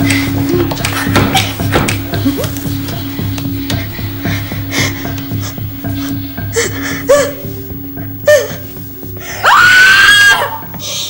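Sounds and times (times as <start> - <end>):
low music drone: 0.0 - 11.0
woman screaming: 9.4 - 10.7.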